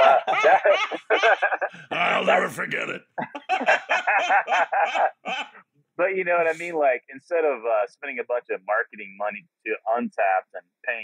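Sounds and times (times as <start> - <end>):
man laughing heartily: 0.0 - 2.2, 3.2 - 5.6.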